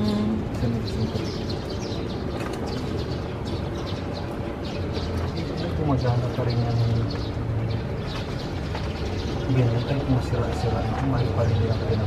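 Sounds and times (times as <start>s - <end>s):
small birds chirping: 0.0s - 12.0s
cart rolling over cobblestones: 0.5s - 12.0s.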